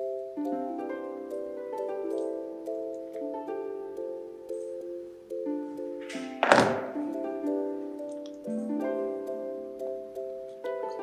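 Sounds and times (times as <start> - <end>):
background music with held notes: 0.0 - 11.0
pliers thunk on cutting mat: 6.1 - 7.0.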